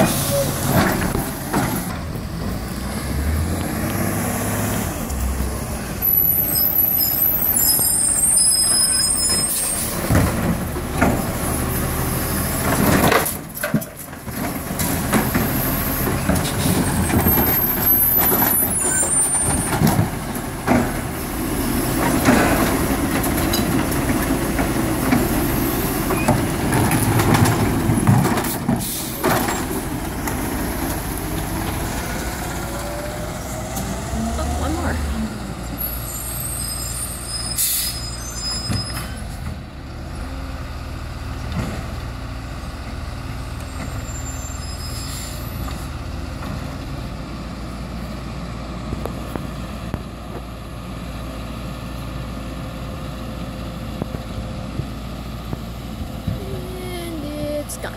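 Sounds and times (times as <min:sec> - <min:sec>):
truck engine revving: 0:00.0 - 0:13.1, 0:14.5 - 0:37.1
garbage truck diesel engine: 0:00.0 - 0:57.9
air brake hiss: 0:37.5 - 0:38.2.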